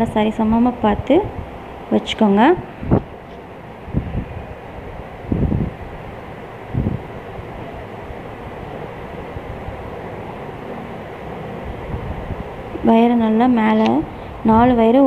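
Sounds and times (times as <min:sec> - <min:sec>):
steady background rumble: 0:00.0 - 0:15.0.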